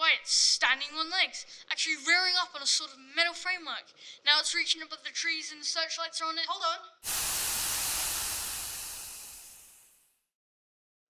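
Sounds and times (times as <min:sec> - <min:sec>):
radio static hiss: 0:07.1 - 0:09.9.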